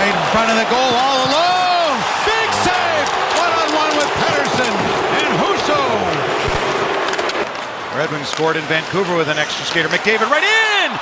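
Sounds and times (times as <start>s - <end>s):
people shouting: 0.0s - 6.2s
arena crowd noise: 0.0s - 11.0s
hockey sticks and puck knocking: 0.8s - 1.7s, 2.4s - 10.8s.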